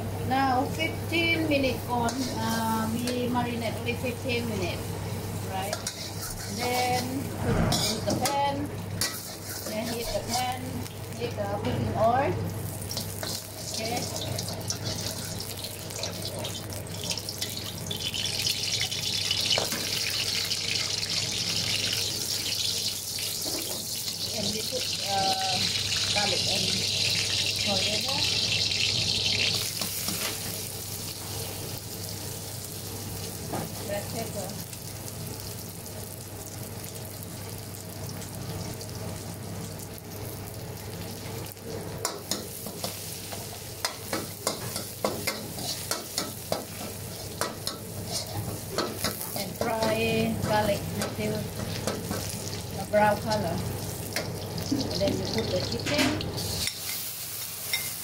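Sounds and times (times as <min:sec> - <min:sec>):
garlic sizzling in hot oil: 0:00.0 - 0:58.0
metal ladle scraping wok: 0:05.6 - 0:08.4, 0:09.0 - 0:10.5, 0:44.6 - 0:49.2.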